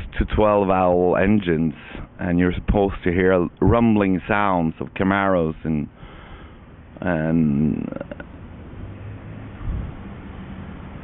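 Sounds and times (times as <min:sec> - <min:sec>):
faint background noise: 0:00.0 - 0:11.0
low steady hum: 0:00.0 - 0:11.0.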